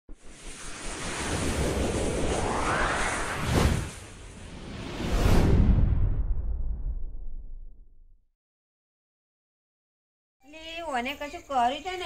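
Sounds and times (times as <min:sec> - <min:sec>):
rushing whoosh: 0:00.1 - 0:07.7
low rumble: 0:00.1 - 0:08.2.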